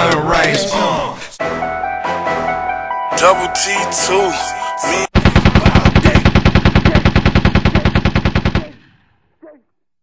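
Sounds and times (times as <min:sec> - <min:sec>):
machine-gun fire: 0:05.1 - 0:08.9.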